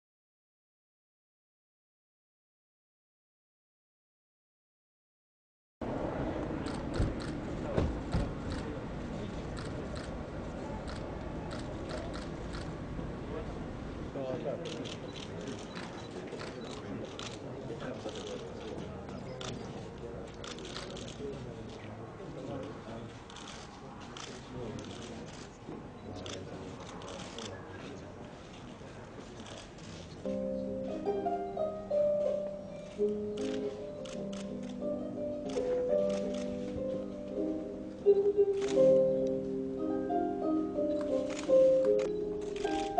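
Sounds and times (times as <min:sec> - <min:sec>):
murmur of voices: 0:05.8 - 0:42.9
camera shutters clicking: 0:20.4 - 0:21.2, 0:33.0 - 0:34.8, 0:35.5 - 0:36.6, 0:38.6 - 0:39.0, 0:40.9 - 0:42.9.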